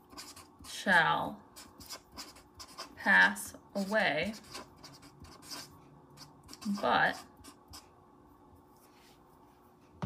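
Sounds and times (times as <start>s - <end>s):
marker writing on paper: 0.0s - 0.8s, 1.6s - 3.0s, 3.8s - 7.9s
person speaking: 2.3s - 5.7s, 6.5s - 7.3s.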